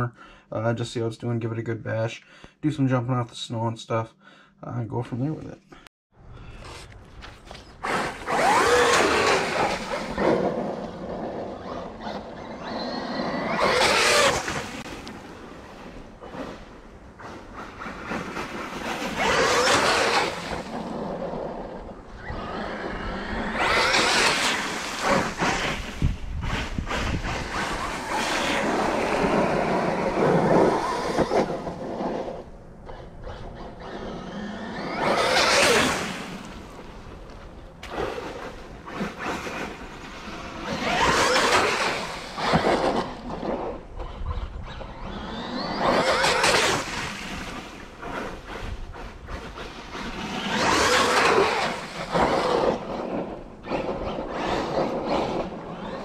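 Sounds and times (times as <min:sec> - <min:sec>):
rc truck motor whine: 0:06.9 - 0:15.3, 0:17.2 - 0:37.4, 0:38.8 - 0:56.0.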